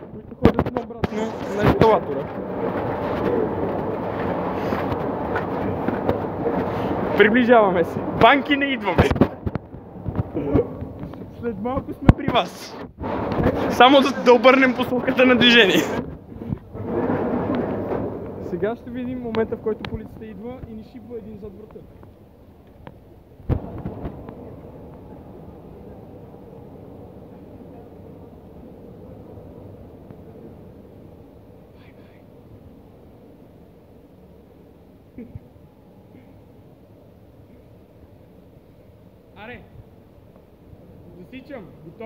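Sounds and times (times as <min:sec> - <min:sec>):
voices: 0:00.0 - 0:16.7
escalator hum and rumble: 0:00.0 - 0:42.0.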